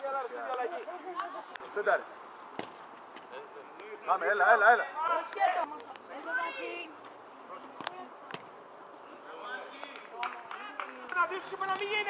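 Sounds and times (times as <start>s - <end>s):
ball being struck thuds: 2.5s - 2.9s, 7.8s - 8.5s.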